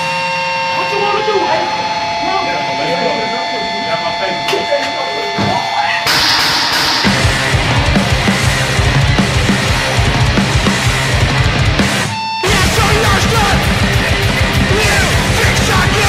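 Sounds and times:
drums: 0.0 - 2.8, 3.6 - 16.0
sustained tones: 0.0 - 11.6
harsh guitar noise: 0.0 - 16.0
distorted bass: 0.8 - 16.0
sampled voice: 12.4 - 13.9, 14.5 - 16.0.

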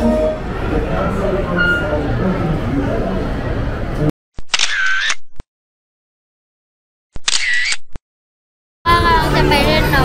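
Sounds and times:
camera shutter sound effect: 4.4 - 5.4, 7.2 - 8.0.

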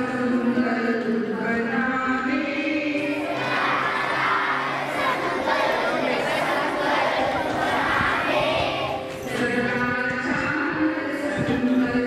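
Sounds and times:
children reciting in unison: 3.0 - 9.8.

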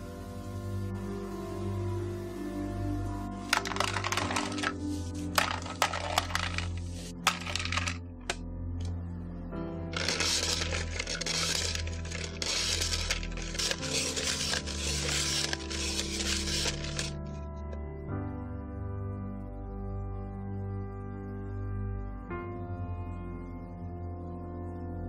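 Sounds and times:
soft background music: 0.0 - 25.0
ice clicks and crackles: 3.6 - 8.4, 10.0 - 17.2
blade scraping ice: 10.0 - 17.2.

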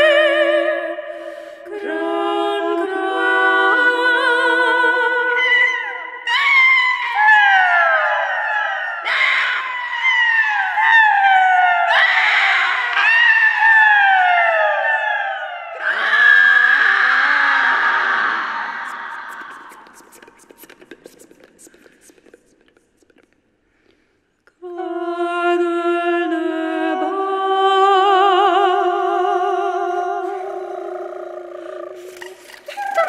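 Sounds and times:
women singing downward glides: 0.0 - 16.0, 24.6 - 33.0.

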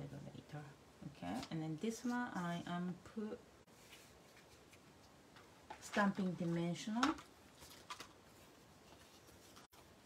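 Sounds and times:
paper rustles: 5.7 - 9.9.

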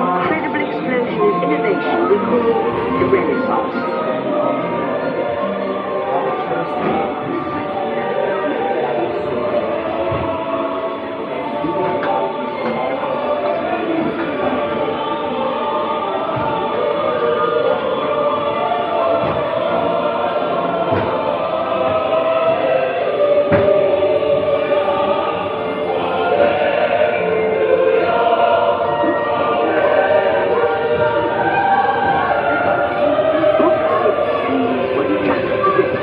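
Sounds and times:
choir singing sustained chords: 0.0 - 36.0.

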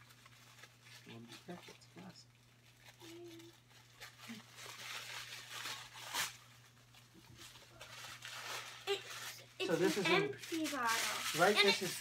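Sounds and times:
paper rustling and tearing: 2.7 - 12.0.

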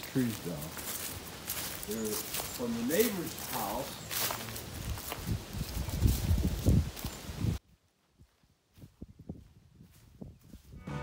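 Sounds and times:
steady outdoor hiss: 0.0 - 7.6
footsteps in dry leaves: 0.0 - 11.0.

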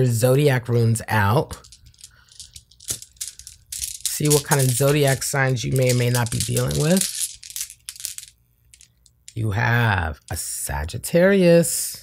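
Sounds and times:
stones clicking in cloth pouch: 1.6 - 9.3.

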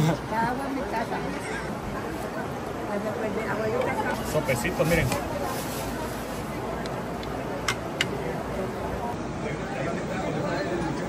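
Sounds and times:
restaurant murmur: 0.0 - 11.0.

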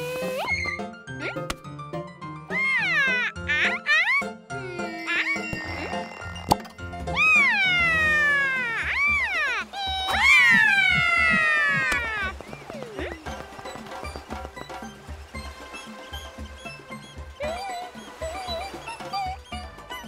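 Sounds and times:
cartoon vocal cries: 2.5 - 6.0, 7.1 - 12.3.

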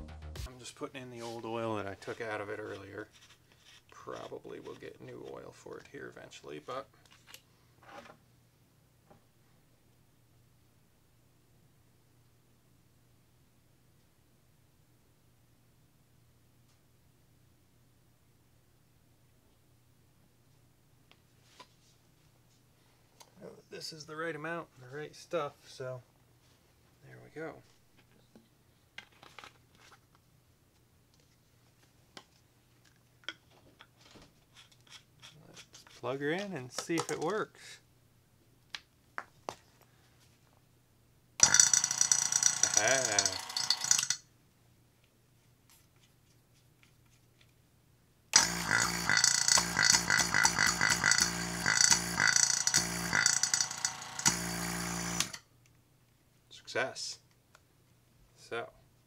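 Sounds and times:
cap scraping on twist: 2.0 - 5.5, 41.4 - 44.2, 48.4 - 54.3.

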